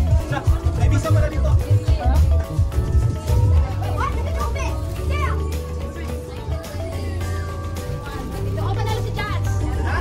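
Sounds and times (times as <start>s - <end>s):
music with steady bass line: 0.0s - 10.0s.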